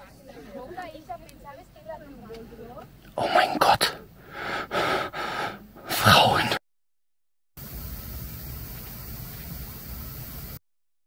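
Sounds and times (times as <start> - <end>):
person's voice: 3.1 - 4.1, 5.7 - 6.6
low hum with hiss: 7.6 - 10.6.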